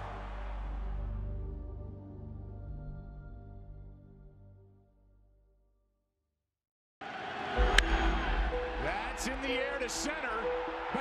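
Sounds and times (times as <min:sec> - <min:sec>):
stadium crowd noise: 0:00.0 - 0:01.0, 0:07.0 - 0:11.0.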